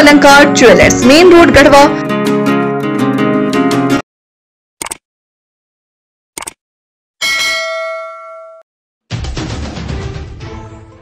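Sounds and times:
bright bell ding: 7.2s - 8.7s.

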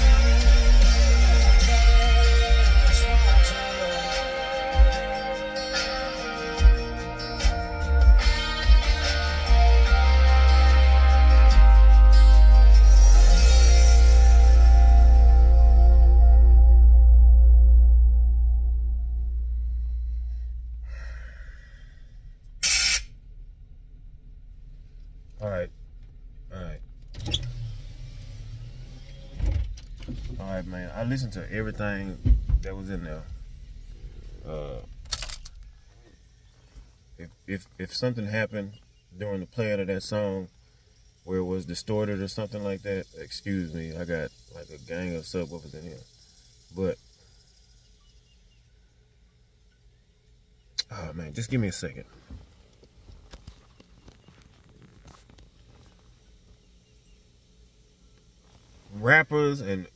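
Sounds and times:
faint low hum: 11.7s - 59.9s
short sharp breath: 19.9s - 23.1s.

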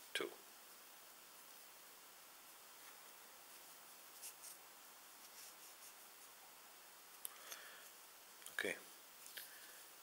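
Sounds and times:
thread rustling over crochet hook: 2.4s - 8.1s.

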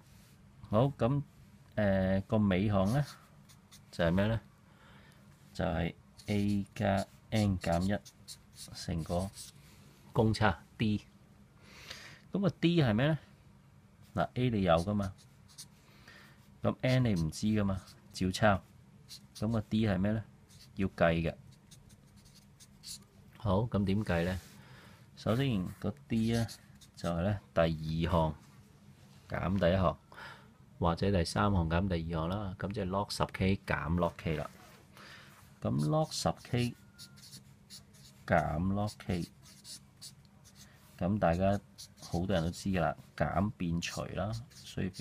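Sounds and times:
person speaking: 0.6s - 4.5s, 5.5s - 11.1s, 14.0s - 15.7s, 16.6s - 24.6s, 25.2s - 28.5s, 30.8s - 34.8s, 35.6s - 45.0s
marker pen scratching on paper: 2.8s - 4.2s, 6.2s - 9.6s, 14.7s - 15.8s, 16.7s - 18.0s, 19.1s - 19.9s, 20.5s - 20.9s, 21.5s - 23.1s, 25.3s - 27.2s, 35.7s - 42.7s, 43.9s - 45.0s.

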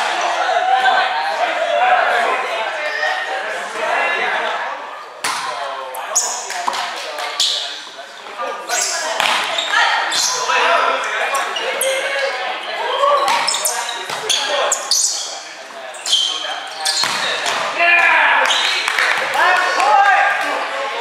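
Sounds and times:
players calling out: 0.0s - 21.0s
volleyball hits echoing: 5.2s - 5.7s, 9.1s - 9.8s.

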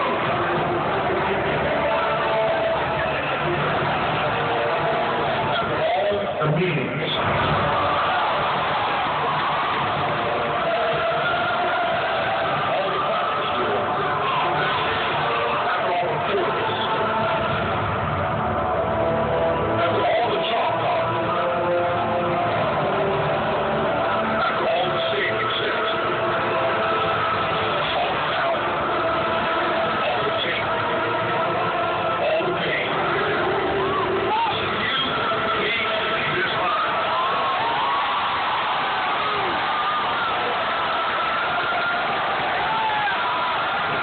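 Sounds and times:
soundtrack over loudspeakers: 0.0s - 44.0s
stadium crowd roaring: 0.0s - 44.0s.

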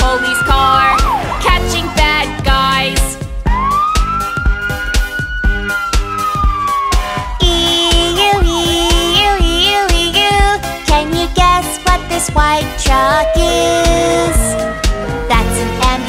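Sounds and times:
cartoon siren wail: 0.0s - 2.2s, 3.4s - 9.9s, 12.8s - 15.9s
children's song backing music: 0.0s - 3.6s, 7.1s - 16.0s
two-tone hi-lo siren: 3.6s - 9.8s, 12.8s - 15.4s.

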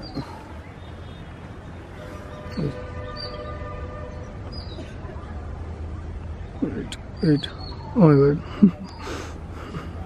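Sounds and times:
high bird chirps: 1.9s - 4.8s.

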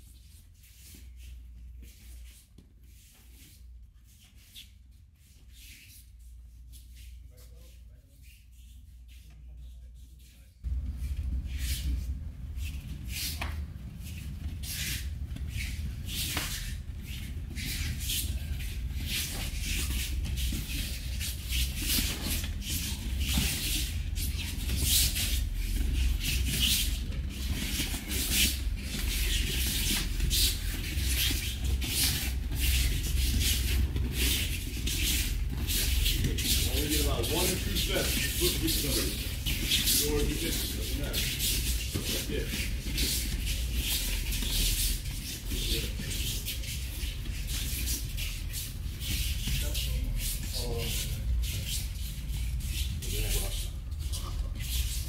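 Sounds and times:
bare feet scuffing on mats: 10.6s - 55.0s.

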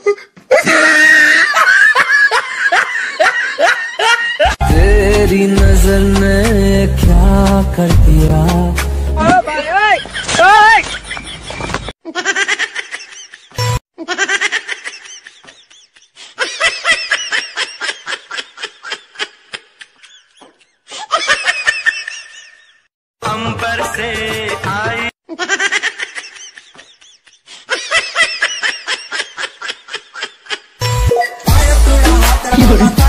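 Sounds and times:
high-pitched laughter: 0.0s - 4.6s, 9.9s - 22.8s, 25.3s - 31.5s, 32.4s - 33.0s.

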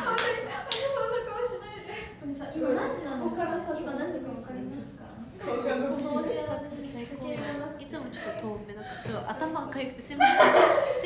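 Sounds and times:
hand claps: 0.0s - 0.9s.

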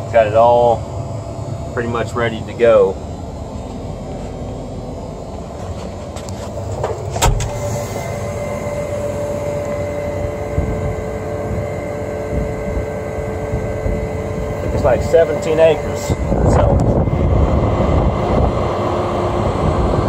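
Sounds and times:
diesel engine running: 0.0s - 20.0s
steady hum: 0.0s - 20.0s.

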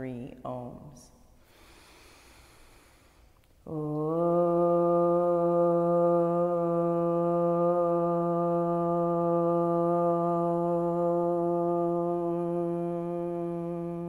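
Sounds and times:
person chanting om: 3.6s - 14.0s.

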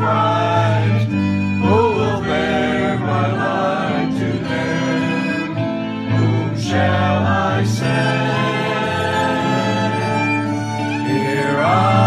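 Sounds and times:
acoustic guitar: 0.0s - 12.0s
choir singing worship song: 0.0s - 12.0s
violins: 0.0s - 12.0s.

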